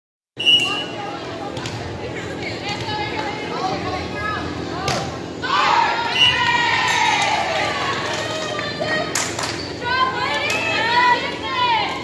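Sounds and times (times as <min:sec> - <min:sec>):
voices chattering in a gym: 0:00.4 - 0:12.0.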